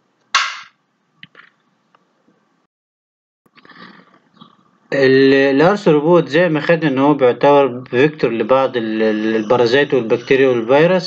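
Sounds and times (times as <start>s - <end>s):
man speaking loudly: 4.9s - 11.0s.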